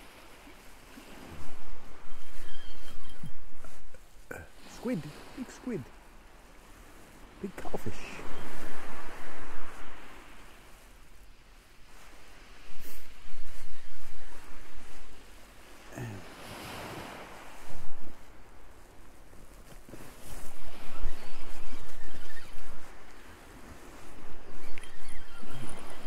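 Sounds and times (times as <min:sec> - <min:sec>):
waves washing over shingle: 0:03.4 - 0:24.7.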